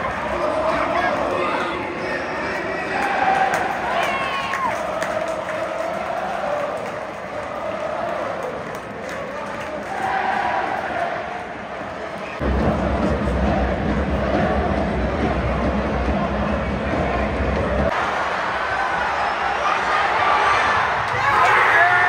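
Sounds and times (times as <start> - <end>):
football crowd singing a chant: 0.0 - 18.4.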